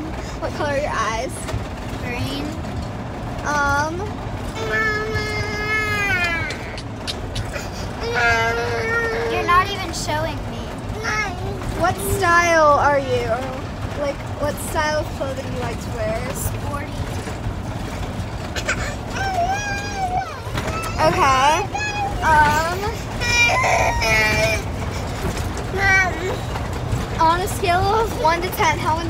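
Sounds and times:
low cabin rumble: 0.0s - 29.0s
toddler whining: 4.6s - 9.9s, 18.6s - 26.6s.

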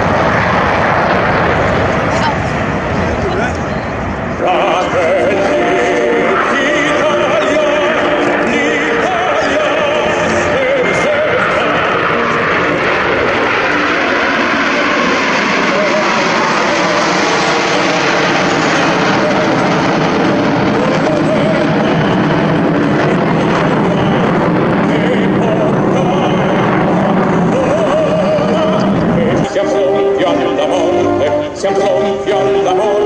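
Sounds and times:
jet aircraft flying past: 0.0s - 33.0s.

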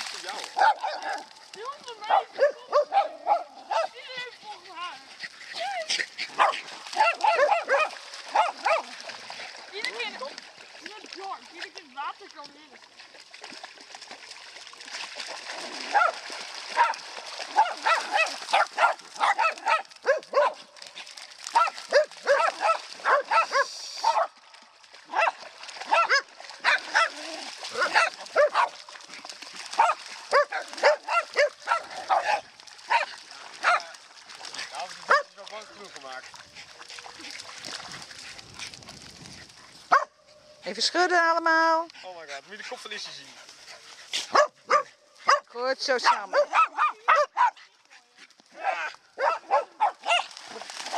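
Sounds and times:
dog barking: 0.6s - 1.3s, 2.0s - 4.0s, 6.3s - 8.9s, 15.9s - 16.2s, 16.8s - 20.7s, 21.5s - 24.4s, 25.1s - 28.8s, 29.8s - 33.9s, 35.1s - 35.3s, 39.9s - 40.2s, 44.2s - 47.6s, 48.6s - 50.3s.

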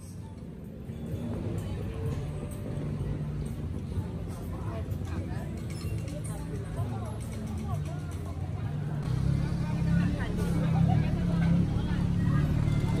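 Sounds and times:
low vehicle engine rumble: 0.0s - 13.0s
crowd chatter: 1.0s - 13.0s.

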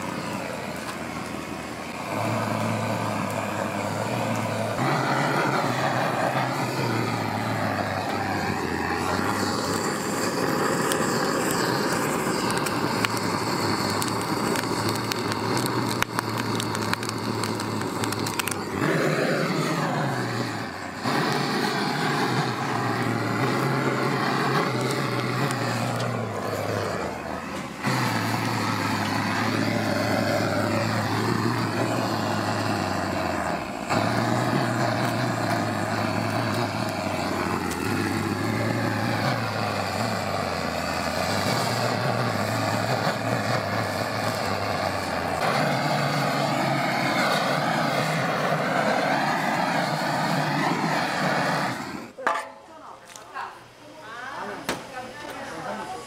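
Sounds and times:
gas torch flame burning: 0.0s - 56.0s.

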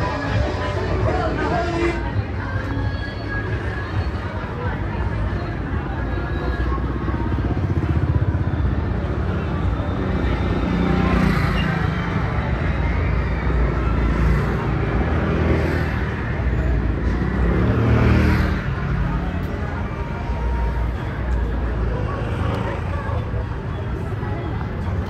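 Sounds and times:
low traffic rumble: 0.0s - 25.0s
motor scooters passing: 3.6s - 25.0s.

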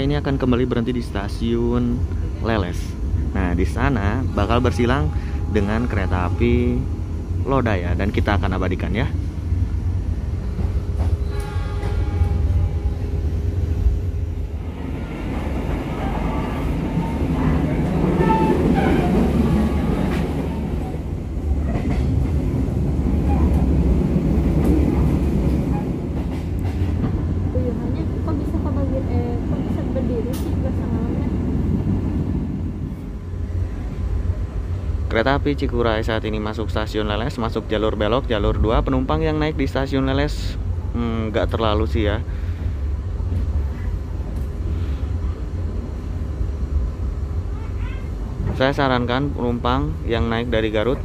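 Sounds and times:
train rumbling inside carriage: 0.0s - 51.0s.

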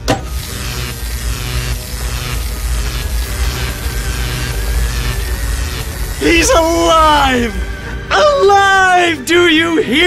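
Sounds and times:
electric crackling and buzzing: 0.0s - 8.6s
thin steady whine: 0.1s - 8.3s
electronic music: 0.3s - 9.2s
deep rumble: 1.0s - 8.1s.

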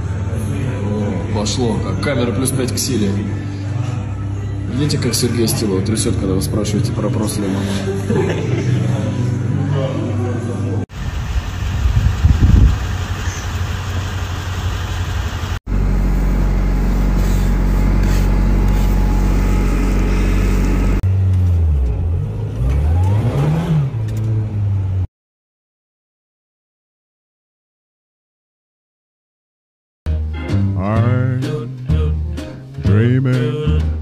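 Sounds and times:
car engines revving: 11.0s - 25.1s.

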